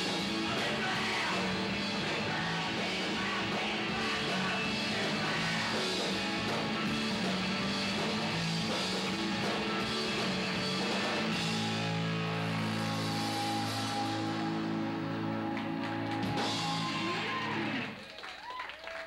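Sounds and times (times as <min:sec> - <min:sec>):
live punk rock band: 0:00.0 - 0:18.0.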